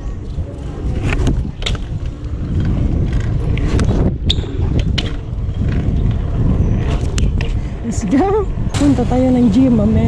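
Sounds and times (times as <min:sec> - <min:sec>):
bike rolling on concrete: 0:00.0 - 0:10.0
wind buffeting microphone: 0:00.0 - 0:10.0.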